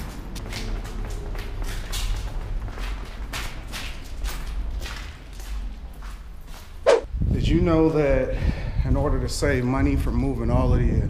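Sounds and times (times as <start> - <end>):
footsteps on debris: 0.0 - 6.8.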